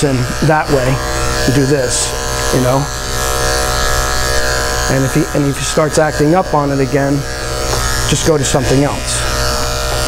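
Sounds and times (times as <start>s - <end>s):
electric clipper buzzing: 0.0s - 10.0s.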